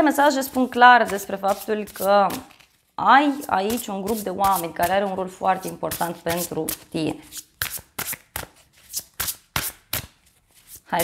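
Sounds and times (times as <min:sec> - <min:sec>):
cards being shuffled: 0:00.6 - 0:02.9, 0:05.6 - 0:10.8.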